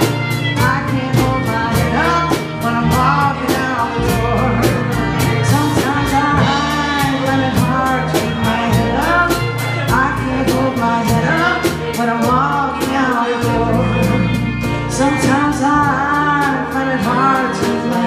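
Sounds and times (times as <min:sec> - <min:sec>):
drum kit cymbal beat: 0:00.0 - 0:18.0
electric bass: 0:00.0 - 0:18.0
harmonica with bending notes: 0:00.0 - 0:18.0.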